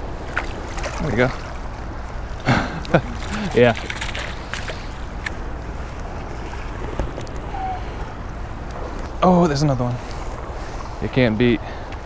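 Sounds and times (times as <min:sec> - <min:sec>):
stream flowing over stones: 0:00.1 - 0:05.2.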